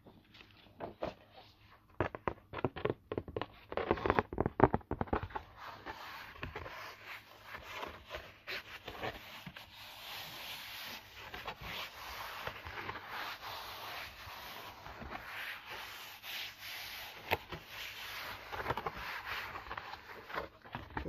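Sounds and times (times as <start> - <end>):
cardboard rubbing by hand: 0.6 - 21.0.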